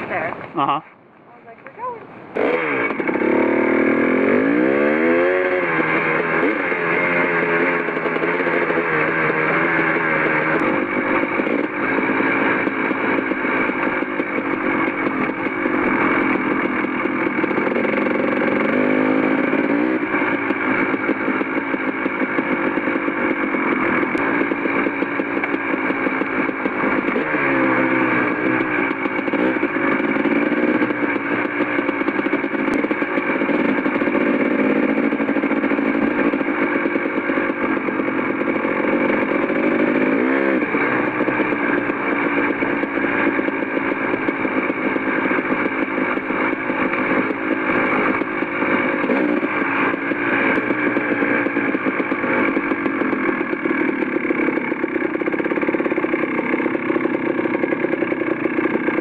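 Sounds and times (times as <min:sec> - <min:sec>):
dirt bike engine revving: 0:02.2 - 0:59.0.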